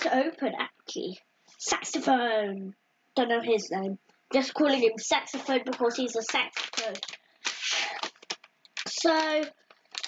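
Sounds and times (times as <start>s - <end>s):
foil bag crinkling: 6.0s - 10.0s.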